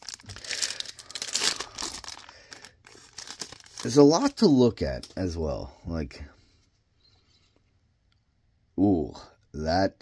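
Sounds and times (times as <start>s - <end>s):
wrapper tearing open: 0.0s - 4.4s.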